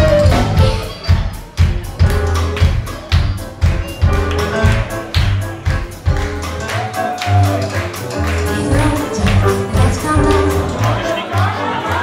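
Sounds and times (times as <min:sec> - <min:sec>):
electric bass: 0:00.0 - 0:11.2
drum kit beat: 0:00.0 - 0:11.6
keyboard: 0:00.0 - 0:12.0.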